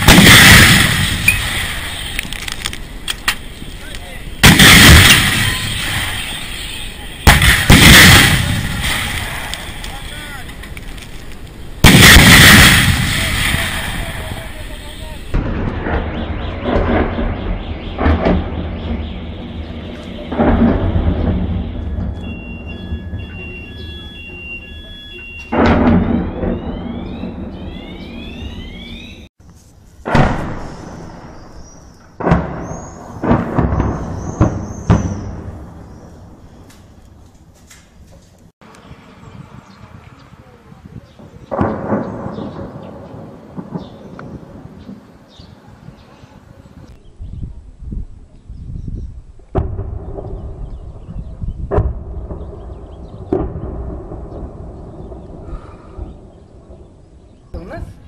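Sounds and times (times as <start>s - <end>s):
heavy artillery blasts: 0.0s - 2.6s, 4.2s - 10.8s, 11.7s - 24.2s, 25.4s - 29.3s, 30.1s - 36.7s, 41.2s - 45.2s, 49.5s - 57.6s
explosions: 0.0s - 24.1s, 25.5s - 29.3s, 30.0s - 37.2s, 40.9s - 45.4s, 49.5s - 57.6s
distant thuds: 15.3s - 23.8s, 25.4s - 29.3s, 49.5s - 57.5s
alarm beeping and whooping: 21.2s - 29.3s.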